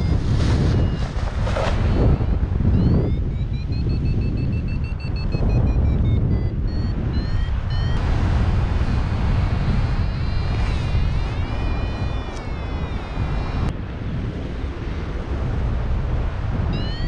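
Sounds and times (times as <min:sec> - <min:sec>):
variometer beeping high and fast: 0:00.0 - 0:01.2, 0:01.8 - 0:08.1, 0:08.8 - 0:13.7, 0:16.7 - 0:17.0
wind rushing over microphone: 0:00.0 - 0:17.0.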